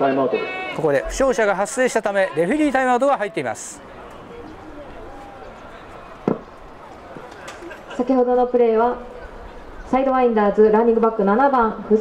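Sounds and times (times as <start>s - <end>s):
faint distant voices: 0.0s - 12.0s
open-air background noise: 0.0s - 12.0s.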